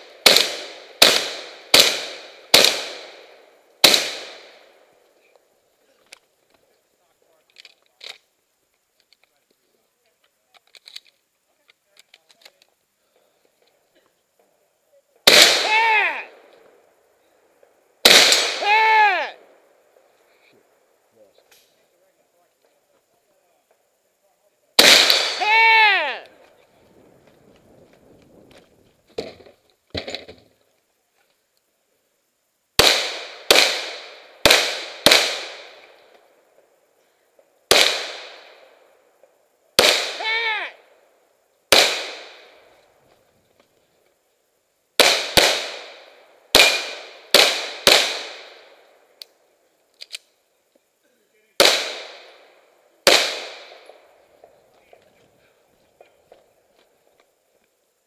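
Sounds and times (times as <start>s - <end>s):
shotgun shots echoing: 0.0s - 4.7s, 15.3s - 16.5s, 18.0s - 19.3s, 24.8s - 26.0s, 32.8s - 36.0s, 37.7s - 38.7s, 39.8s - 40.7s, 41.7s - 42.7s, 45.0s - 48.8s, 51.6s - 54.0s.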